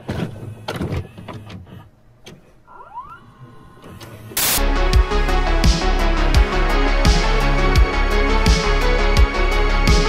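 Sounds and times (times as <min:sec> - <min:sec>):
tape mechanism clicks and clunks: 0:00.0 - 0:03.2.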